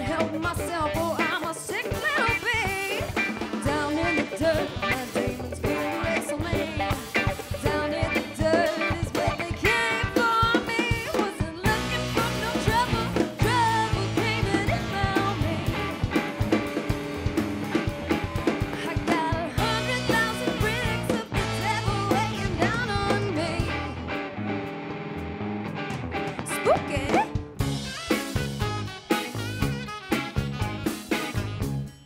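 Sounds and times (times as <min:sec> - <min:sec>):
woman singing: 0:00.0 - 0:16.1, 0:18.7 - 0:24.0, 0:26.5 - 0:27.3
bass guitar: 0:00.0 - 0:32.0
drum kit: 0:00.0 - 0:32.0
electric guitar: 0:00.0 - 0:32.0.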